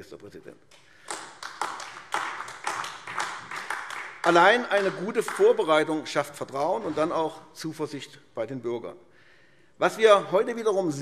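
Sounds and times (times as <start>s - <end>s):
scattered applause: 1.0s - 5.8s.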